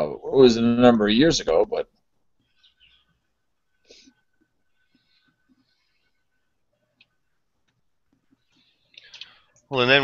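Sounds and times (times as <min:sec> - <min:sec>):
faint high chirps: 0:02.4 - 0:07.5.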